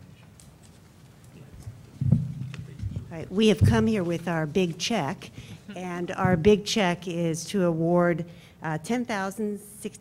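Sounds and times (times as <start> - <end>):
microphone handling thumps: 2.0 - 4.2, 6.1 - 6.9.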